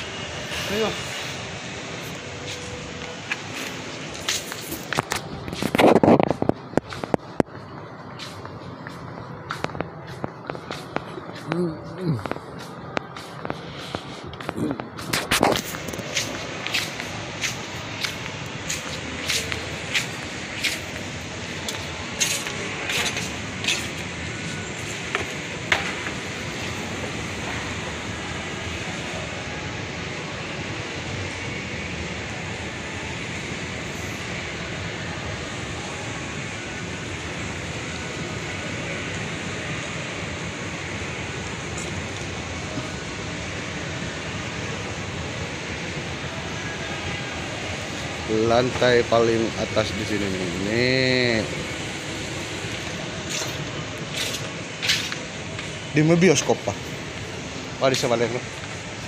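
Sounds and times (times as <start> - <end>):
mall ambience: 0.0 - 59.0
footsteps on tiled floor: 2.0 - 27.6, 52.7 - 55.8.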